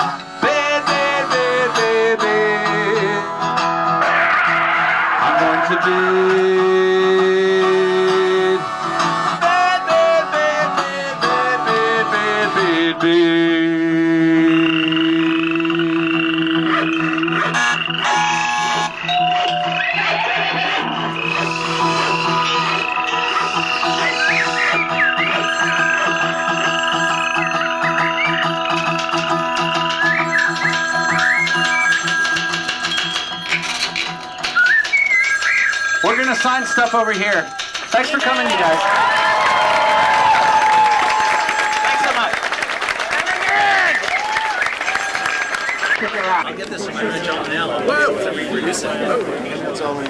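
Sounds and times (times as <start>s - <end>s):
acoustic guitar: 0.0s - 40.7s
voices: 4.0s - 8.6s, 35.7s - 38.8s, 43.0s - 50.0s
accordion sustained chords: 5.9s - 19.3s
high warbling sounds: 14.1s - 19.0s
applause: 37.9s - 46.4s.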